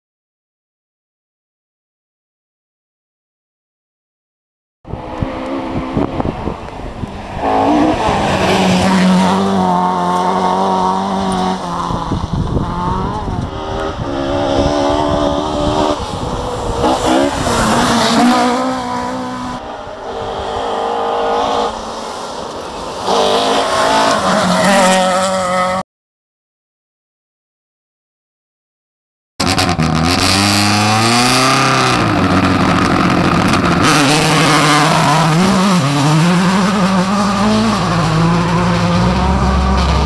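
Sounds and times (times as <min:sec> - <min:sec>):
rally car engines revving: 0:04.9 - 0:25.8, 0:29.4 - 0:40.0.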